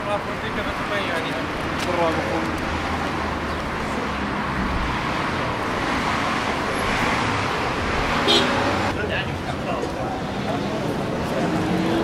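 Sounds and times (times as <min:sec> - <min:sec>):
cars passing: 0:00.0 - 0:12.0.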